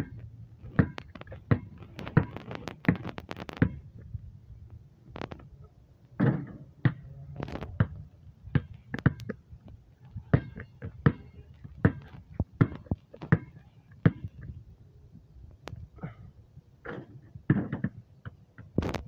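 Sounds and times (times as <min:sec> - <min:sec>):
basketball bouncing on concrete: 0:00.0 - 0:03.8, 0:06.2 - 0:07.1, 0:07.7 - 0:09.4, 0:10.2 - 0:14.5, 0:16.9 - 0:18.8.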